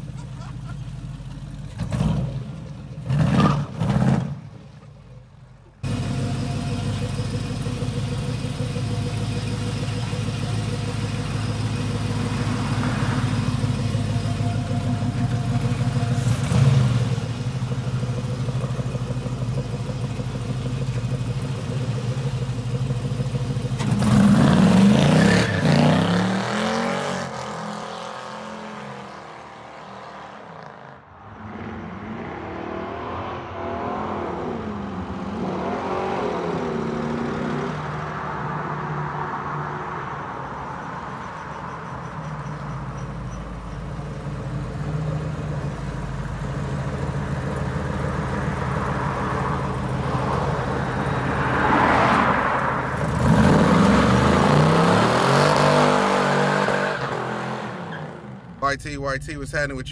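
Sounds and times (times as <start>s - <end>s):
car driving off: 0.0s - 59.9s
car engine idling and revving: 0.0s - 59.9s.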